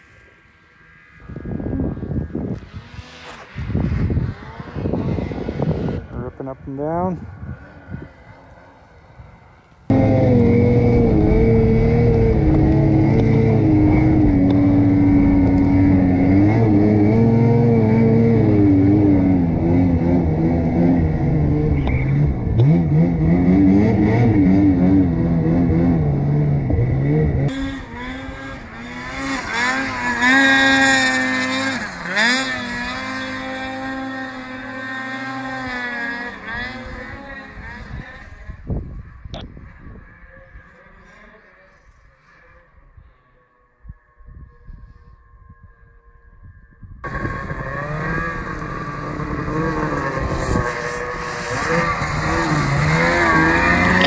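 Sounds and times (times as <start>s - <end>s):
snowmobile engine at high revs: 0.1s - 54.0s
high whine sweeping up and down: 9.8s - 30.1s.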